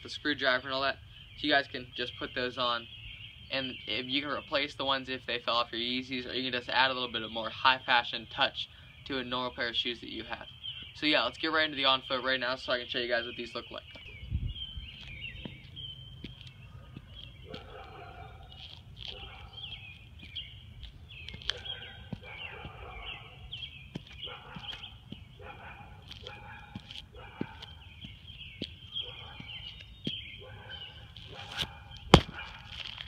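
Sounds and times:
small birds chirping: 0.0 - 33.0.

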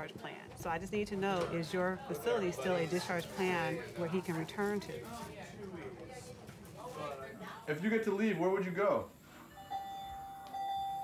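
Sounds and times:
electronic alarm beep: 9.5 - 11.0.

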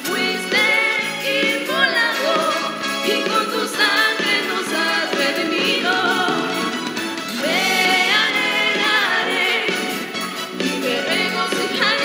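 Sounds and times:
choir singing religious song: 0.0 - 12.0.

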